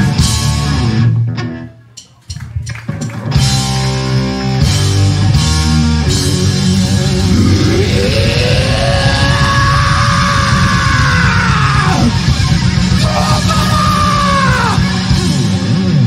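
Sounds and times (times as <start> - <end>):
live rock band playing: 0.0 - 7.4, 9.2 - 16.0
person yelling held vocal: 7.8 - 12.2, 13.0 - 14.9.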